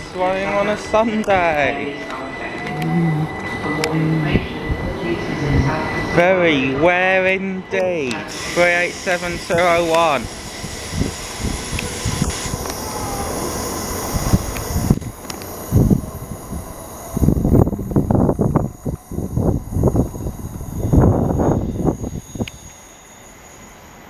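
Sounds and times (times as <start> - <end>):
train rumbles and thumps: 0.0 - 23.1
electric train whine: 0.0 - 24.0
rail noise: 0.0 - 24.0.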